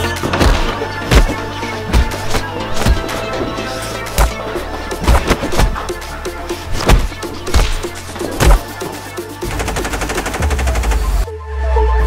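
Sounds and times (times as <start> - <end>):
electronic dance music: 0.8 - 11.3.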